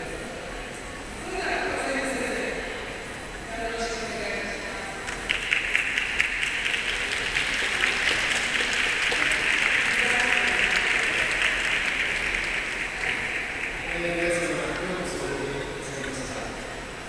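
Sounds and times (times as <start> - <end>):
audience applauding: 5.0 - 15.4.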